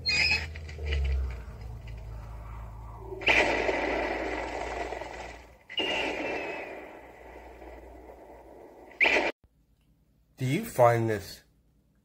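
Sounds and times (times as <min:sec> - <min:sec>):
explosion blasts: 0:02.6 - 0:09.3.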